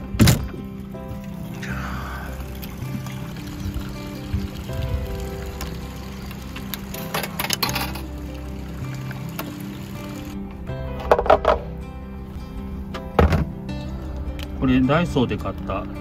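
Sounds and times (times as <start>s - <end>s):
background music with held notes: 0.0s - 16.0s.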